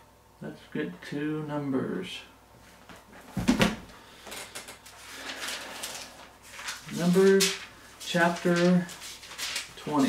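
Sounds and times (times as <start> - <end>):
heavy book thump on desk: 3.4 - 3.9
book pages turning: 4.6 - 10.0.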